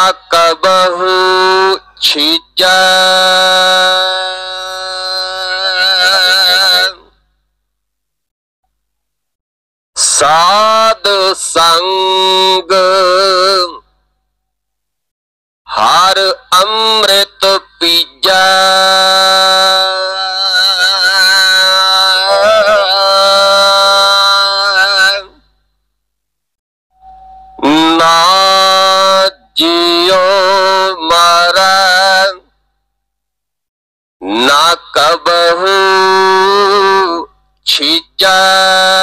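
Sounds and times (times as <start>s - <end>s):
person singing a long note: 0.3s - 7.1s, 16.2s - 25.4s.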